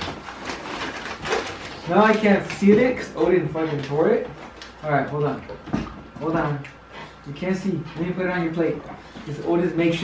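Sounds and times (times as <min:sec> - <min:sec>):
plastic bag crinkling: 0:00.0 - 0:04.9.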